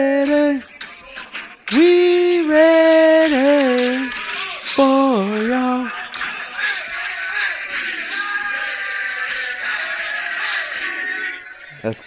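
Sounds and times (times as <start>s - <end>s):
crowd chanting through phone speaker: 2.6s - 11.9s.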